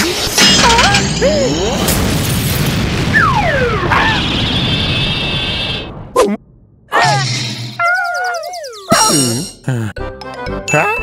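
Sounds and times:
cartoon explosion bang and rumble: 1.8s - 6.9s
high falling whistles: 7.6s - 9.0s.

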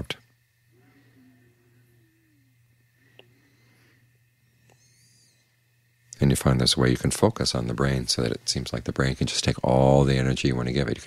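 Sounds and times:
low steady hum: 0.0s - 11.0s
faint high chirp: 4.4s - 5.9s.

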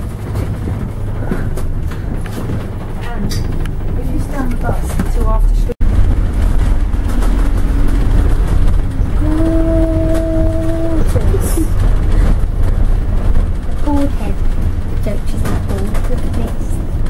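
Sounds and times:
bus engine and road rumble: 0.0s - 17.0s.

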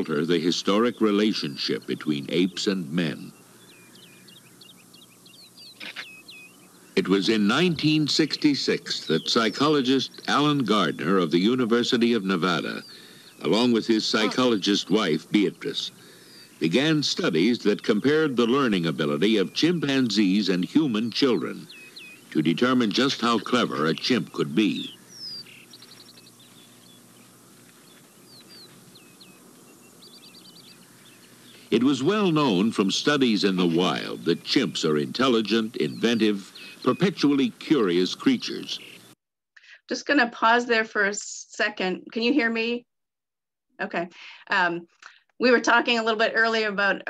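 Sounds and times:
faint low hum: 0.0s - 39.2s
small birds chirping: 0.0s - 39.2s
faint hiss: 0.0s - 39.8s.

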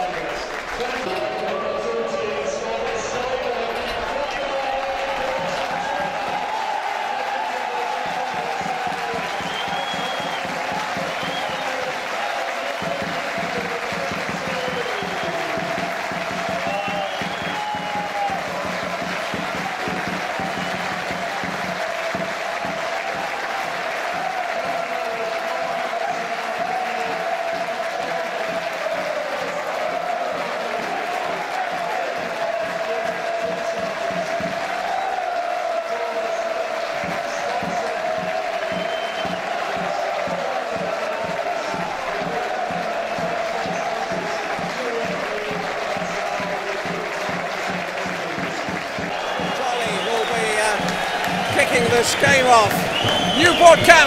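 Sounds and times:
stadium crowd cheering: 0.0s - 54.0s.

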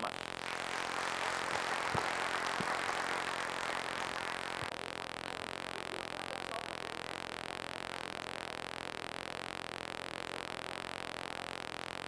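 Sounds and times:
audience applauding: 0.4s - 4.7s.

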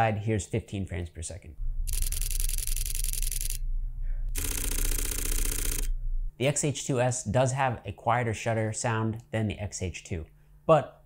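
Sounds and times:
camera shutter bursts: 1.9s - 3.6s, 4.4s - 5.9s.

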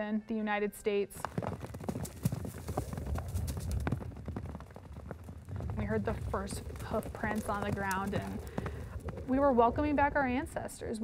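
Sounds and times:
hooves clattering and thudding: 1.1s - 10.8s.

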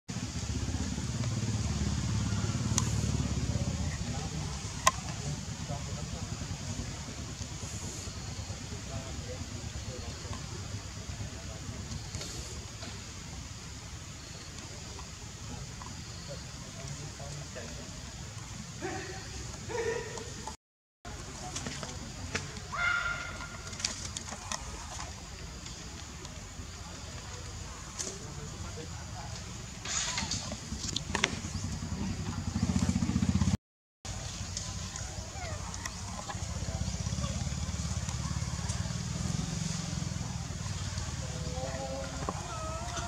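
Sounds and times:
small engine running: 0.2s - 13.7s, 29.9s - 43.0s
macaque cries: 22.7s - 23.6s, 34.9s - 36.3s, 41.8s - 43.0s.

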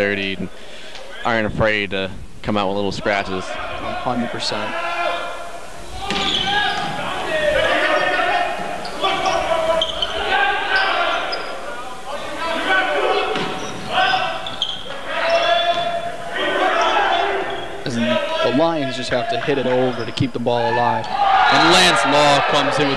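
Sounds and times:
players calling: 2.6s - 22.9s
volleyball being struck: 6.0s - 7.0s.

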